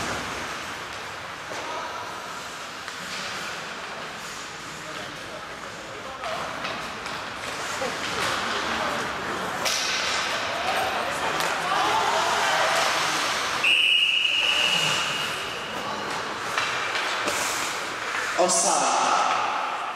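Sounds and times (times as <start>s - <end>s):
skates scraping on ice: 0.0s - 18.4s
people shouting: 10.7s - 13.0s.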